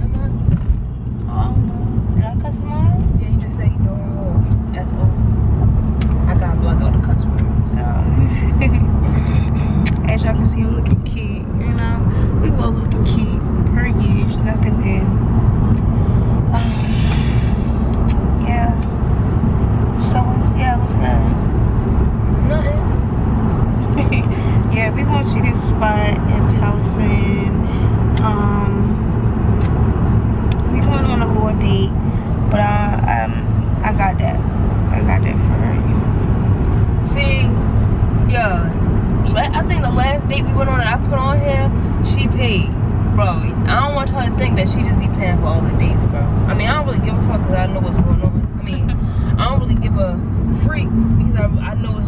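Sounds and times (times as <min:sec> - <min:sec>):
car interior road rumble: 0:00.0 - 0:52.0.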